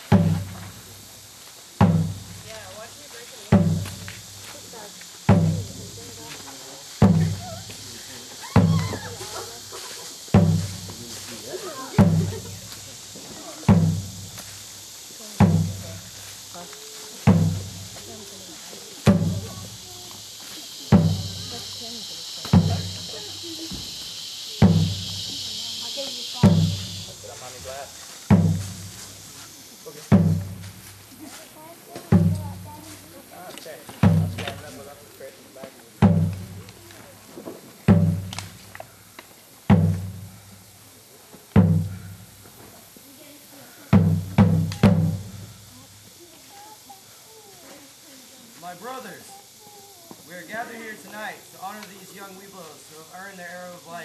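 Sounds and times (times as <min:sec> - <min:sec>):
large drum beaten slowly: 0:00.0 - 0:33.2, 0:33.9 - 0:35.0, 0:36.0 - 0:38.7, 0:39.6 - 0:40.8, 0:41.5 - 0:43.0, 0:43.9 - 0:46.3
high hiss: 0:00.0 - 0:54.0.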